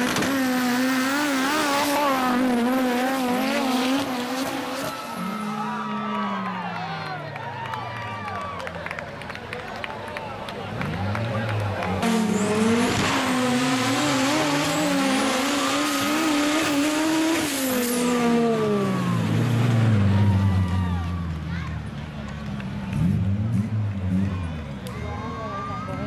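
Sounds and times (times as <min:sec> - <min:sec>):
race car engine at full throttle: 0:00.0 - 0:26.0.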